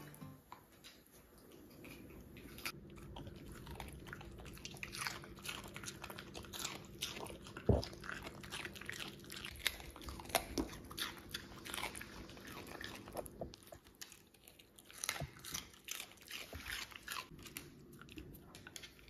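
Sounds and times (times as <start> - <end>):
dogs chewing raw vegetables: 0.5 - 19.0.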